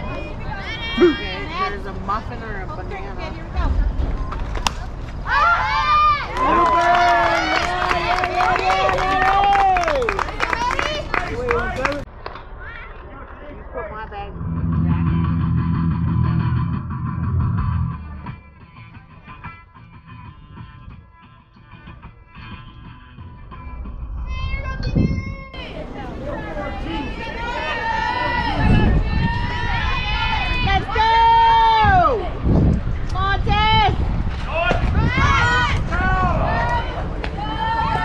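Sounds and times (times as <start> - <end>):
guitar music: 14.3 - 23.9.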